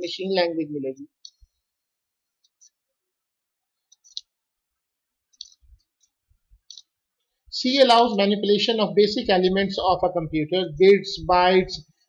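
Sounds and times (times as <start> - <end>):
computer mouse clicking: 5.3 - 7.0.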